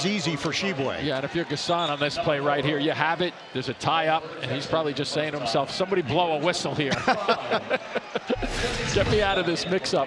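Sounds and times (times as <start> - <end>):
commentators laughing: 6.7 - 9.3.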